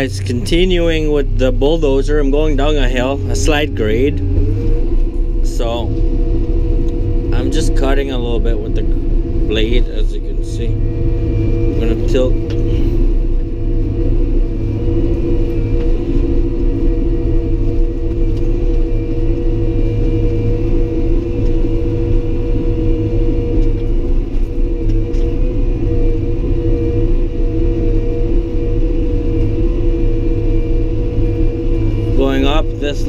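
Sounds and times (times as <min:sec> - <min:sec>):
bulldozer diesel engine running: 0:00.0 - 0:33.0
low rumble of tracks: 0:00.0 - 0:33.0.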